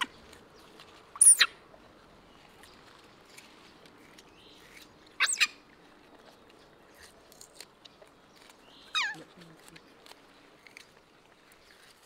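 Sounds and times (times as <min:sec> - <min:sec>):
baby monkey squealing: 0:01.2 - 0:01.6, 0:05.2 - 0:05.6, 0:08.9 - 0:09.2
faint chewing clicks: 0:01.7 - 0:12.0.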